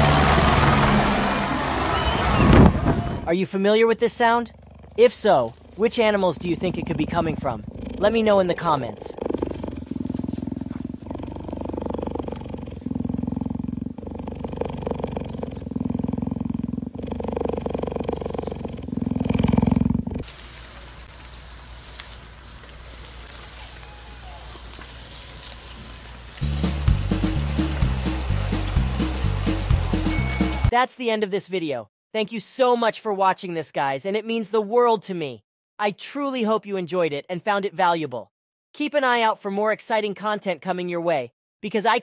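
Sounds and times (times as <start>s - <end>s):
cheetah purring: 4.1s - 20.3s
music with a steady beat: 26.4s - 30.7s.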